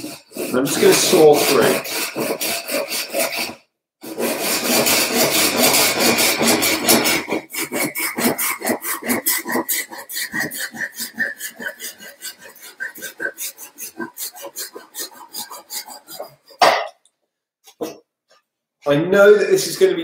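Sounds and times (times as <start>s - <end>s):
saw cutting bamboo: 0.0s - 16.7s.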